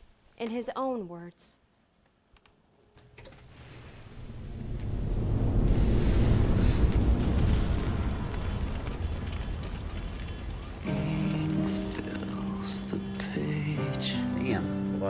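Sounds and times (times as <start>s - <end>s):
low rumbling noise swell: 3.4s - 11.5s.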